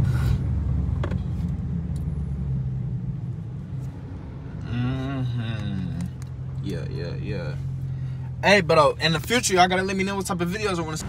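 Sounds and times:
car engine rumble from inside: 0:00.0 - 0:11.0.

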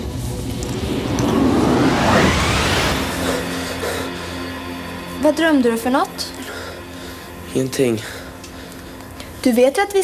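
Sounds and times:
rising whoosh: 0:00.0 - 0:04.6.

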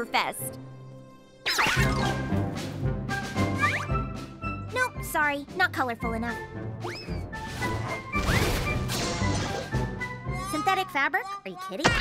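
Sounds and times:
light background music: 0:00.0 - 0:12.0.

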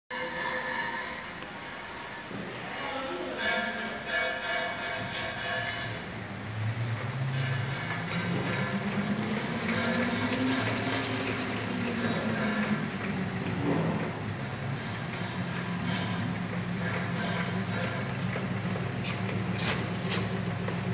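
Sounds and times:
tablet press motor running: 0:05.7 - 0:20.9.

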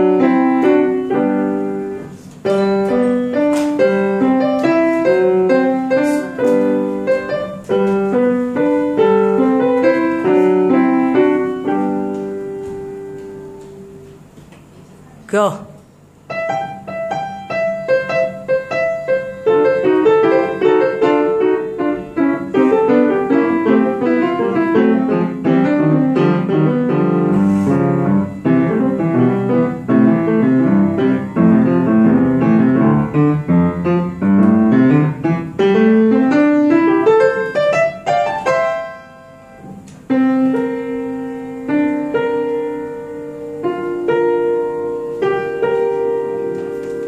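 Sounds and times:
solo piano with fast runs: 0:00.0 - 0:14.8, 0:15.9 - 0:47.0.

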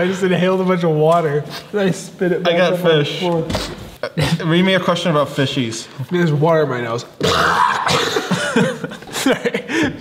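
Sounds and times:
man coughing and sputtering: 0:03.5 - 0:04.5, 0:07.2 - 0:10.0
man laughing: 0:04.0 - 0:04.6, 0:07.6 - 0:10.0.

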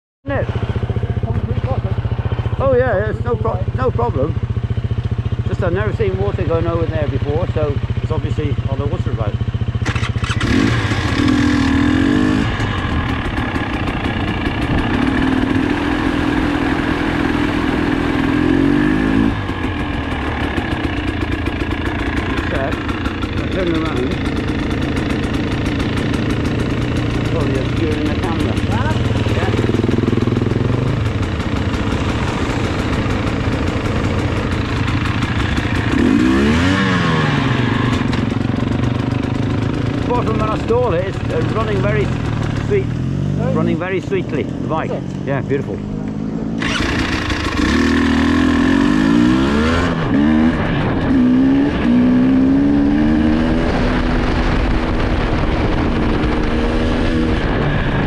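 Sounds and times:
motorcycle engine running: 0:00.2 - 0:58.0.

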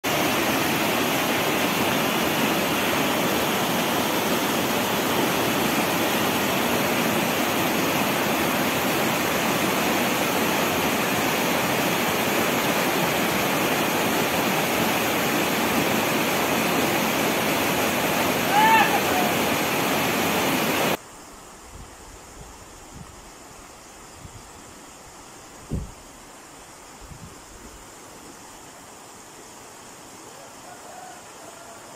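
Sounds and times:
floodwater rushing in creek: 0:00.0 - 0:21.3.

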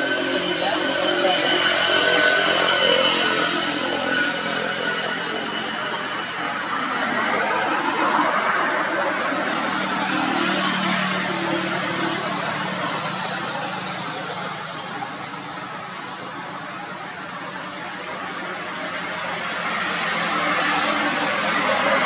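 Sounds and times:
motor engine running: 0:09.0 - 0:22.0.

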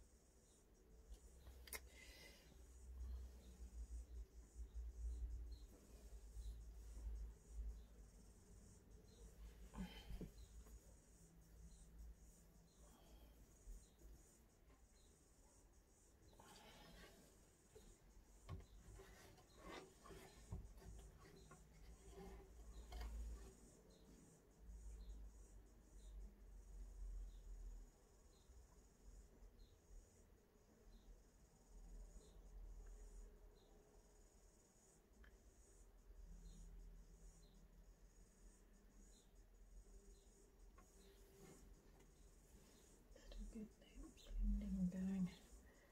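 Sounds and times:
paintbrush brushing on canvas: 0:02.7 - 0:25.2, 0:40.1 - 0:45.9.

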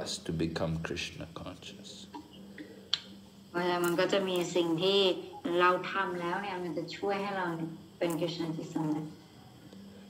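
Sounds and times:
woman speaking: 0:03.5 - 0:09.2.

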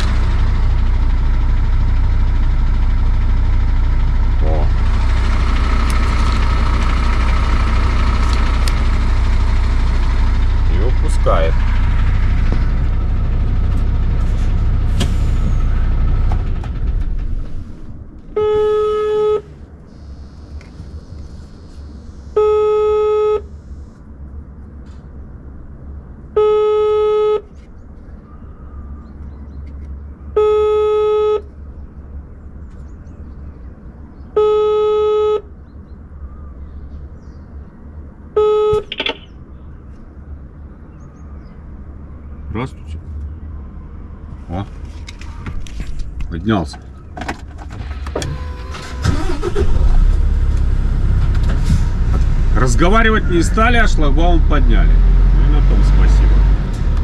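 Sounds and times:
diesel truck engine idling: 0:00.0 - 0:57.0
intercom call beeps: 0:18.4 - 0:19.4, 0:22.4 - 0:23.4, 0:26.4 - 0:27.4, 0:30.4 - 0:31.5, 0:34.4 - 0:35.4, 0:38.4 - 0:39.3.

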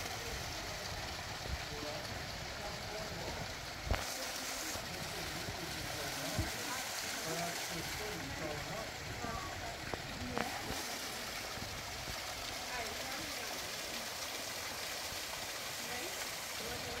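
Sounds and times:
small waterfall splashing into pool: 0:00.0 - 0:17.0.

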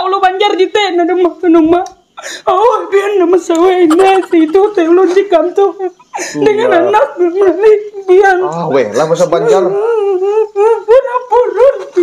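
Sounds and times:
high-pitched voice crying and sobbing: 0:02.2 - 0:08.2, 0:09.3 - 0:12.0.

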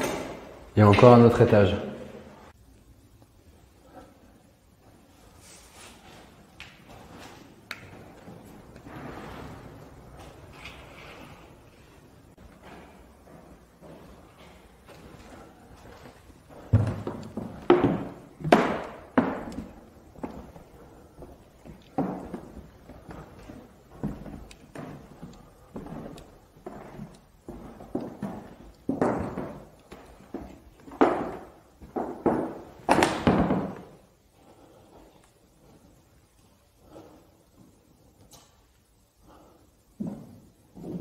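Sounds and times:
footsteps on wooden floorboards: 0:12.3 - 0:33.9, 0:39.9 - 0:41.0.

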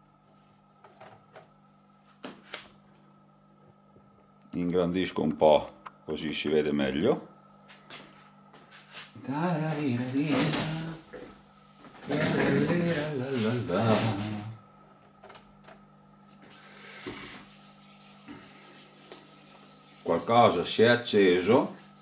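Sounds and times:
faint steady hum: 0:00.0 - 0:22.0
man speaking: 0:04.5 - 0:07.3, 0:20.1 - 0:21.8.

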